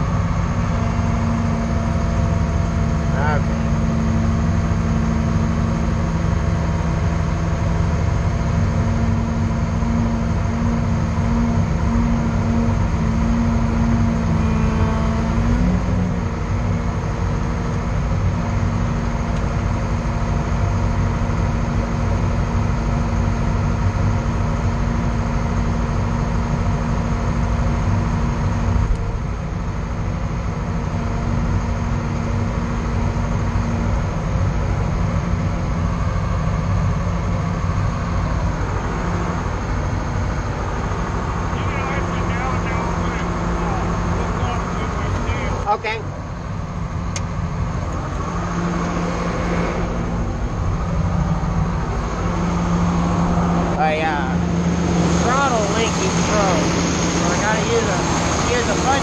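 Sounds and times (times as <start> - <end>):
diesel engine running with whine: 0.0 - 59.0.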